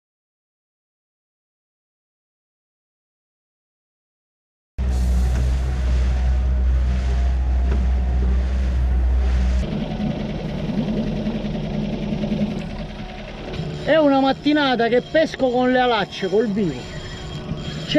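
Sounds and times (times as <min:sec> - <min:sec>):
motorboat engine running: 0:04.8 - 0:17.9.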